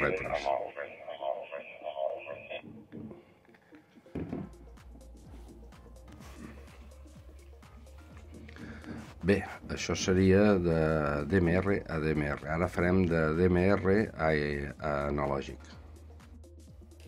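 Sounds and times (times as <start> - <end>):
tinny two-way radio audio: 0.0 - 2.8.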